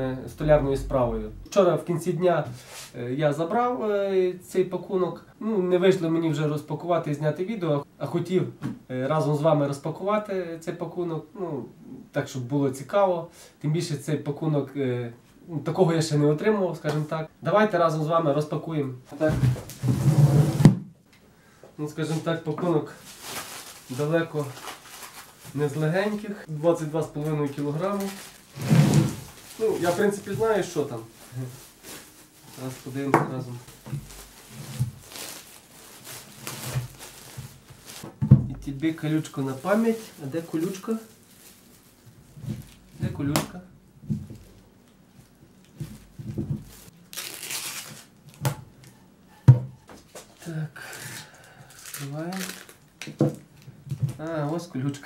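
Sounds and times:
sack fabric rustling: 0:23.0 - 0:38.0, 0:39.0 - 0:43.0, 0:45.8 - 0:47.9.

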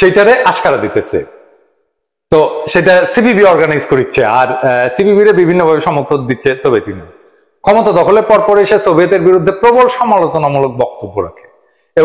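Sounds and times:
man talking: 0:00.0 - 0:01.5, 0:02.3 - 0:12.0.

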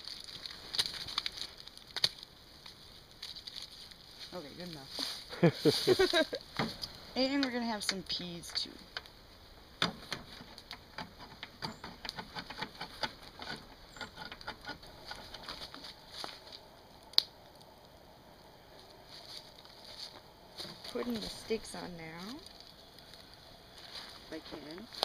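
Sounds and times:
campfire crackling and popping: 0:00.0 - 0:25.0.

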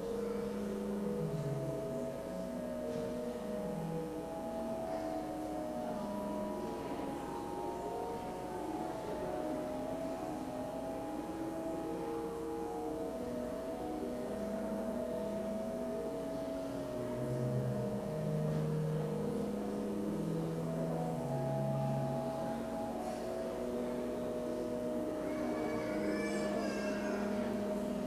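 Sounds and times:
low bass organ notes: 0:00.0 - 0:25.2
organ chords: 0:00.0 - 0:28.0.

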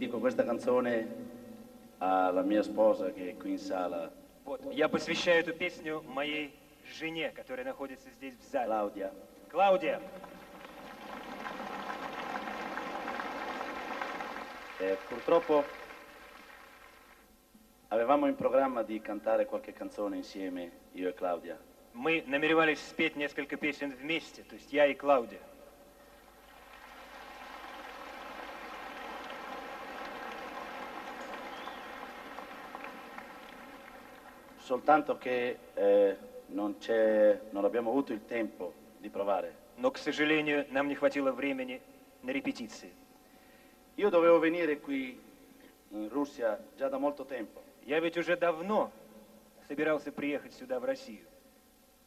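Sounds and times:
audience applauding: 0:10.2 - 0:17.2, 0:26.2 - 0:34.7.

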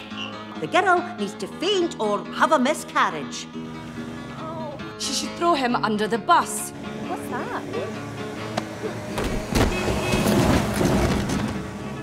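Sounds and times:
bus rushing past: 0:06.5 - 0:12.0.

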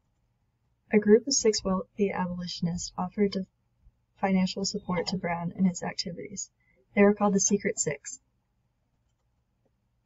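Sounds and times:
woman narrating: 0:00.9 - 0:03.4, 0:04.2 - 0:08.2.

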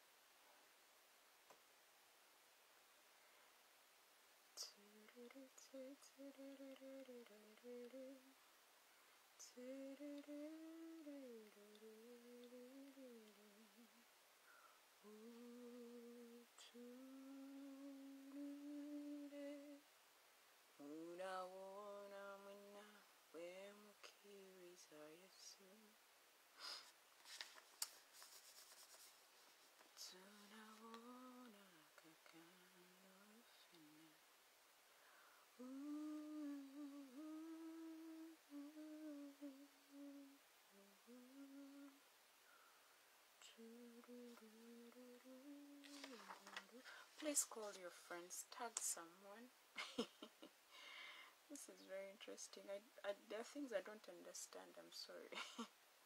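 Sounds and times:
woman humming slow tune: 0:04.6 - 0:08.3, 0:09.4 - 0:14.0, 0:15.0 - 0:19.8, 0:30.0 - 0:34.2, 0:35.6 - 0:42.0, 0:43.4 - 0:48.2.

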